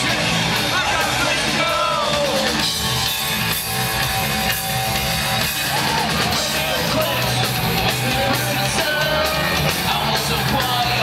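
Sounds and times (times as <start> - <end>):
punk rock band playing: 0.0 - 11.0
shouted vocals: 5.4 - 11.0.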